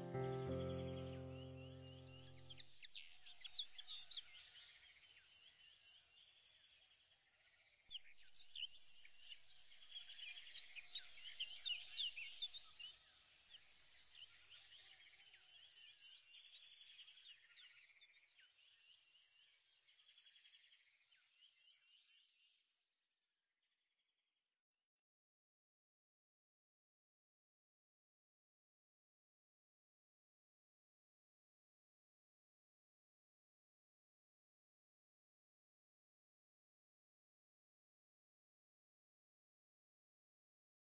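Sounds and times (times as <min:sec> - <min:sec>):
held music chord: 0:00.0 - 0:02.4
birds chirping: 0:00.0 - 0:03.0.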